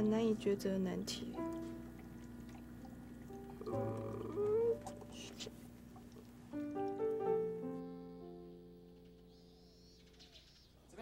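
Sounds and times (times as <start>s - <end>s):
faint steady background tones: 0.0s - 11.0s.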